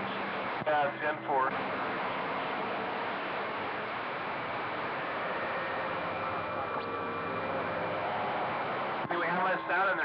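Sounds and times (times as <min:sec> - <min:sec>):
radio static hiss: 0:00.0 - 0:10.0
weak voices in static: 0:00.0 - 0:10.0.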